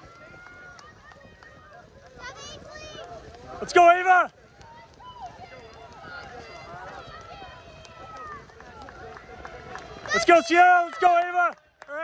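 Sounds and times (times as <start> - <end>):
distant spectators cheering: 0.0 - 12.0
runners' footfalls on grass: 0.0 - 12.0.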